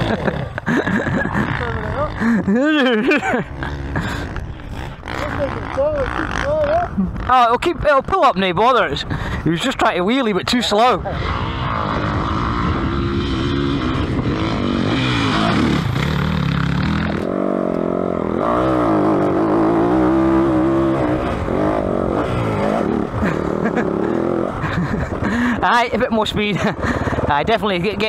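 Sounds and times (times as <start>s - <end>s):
motorcycle engine revving hard: 0.0s - 7.6s, 10.9s - 25.6s.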